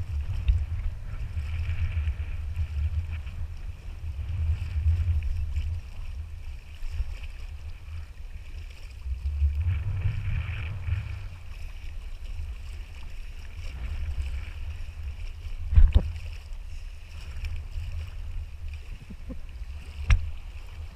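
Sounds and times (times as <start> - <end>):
water sloshing around wading legs: 0.0 - 20.9
wind buffeting microphone: 0.0 - 20.9.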